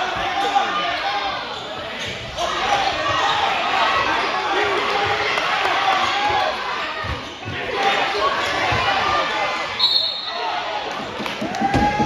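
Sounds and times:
referee's whistle: 0:09.8 - 0:10.5.

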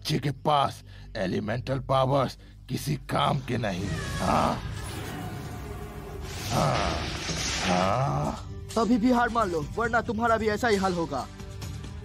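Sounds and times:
dramatic background music: 0:00.0 - 0:12.0
man growling: 0:06.4 - 0:08.5.

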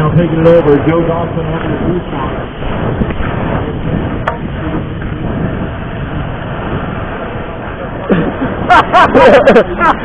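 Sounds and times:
bike rolling on dirt track: 0:00.0 - 0:10.0
wind buffeting microphone: 0:00.0 - 0:10.0.

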